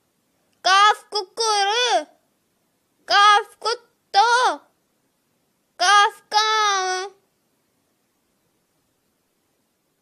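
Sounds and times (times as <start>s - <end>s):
young child chanting: 0.6s - 2.2s, 3.0s - 4.8s, 5.8s - 7.2s.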